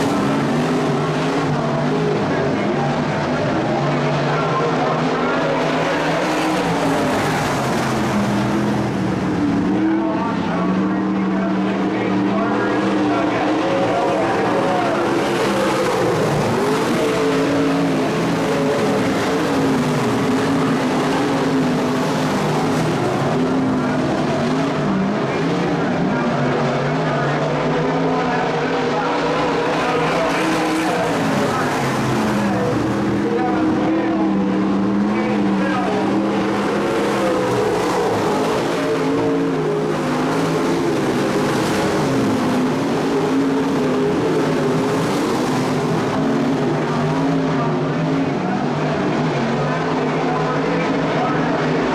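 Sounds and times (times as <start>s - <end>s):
race car engines: 0.0s - 51.9s.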